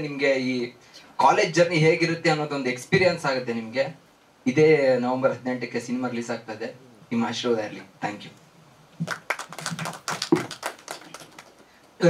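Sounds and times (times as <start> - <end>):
people clapping: 9.0 - 11.9.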